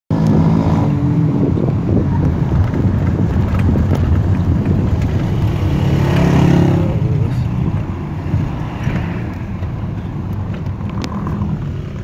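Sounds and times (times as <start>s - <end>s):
loud rushing noise: 0.1s - 10.3s
vehicle engine hum: 0.1s - 12.0s.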